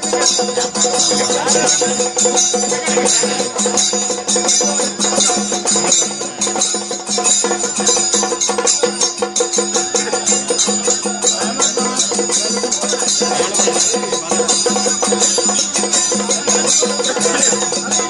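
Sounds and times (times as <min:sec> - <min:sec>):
fast steady percussion: 0:00.0 - 0:18.0.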